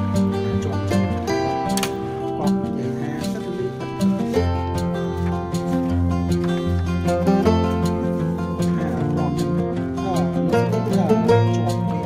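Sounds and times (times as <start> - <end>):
plucked guitar music: 0.0 - 12.0.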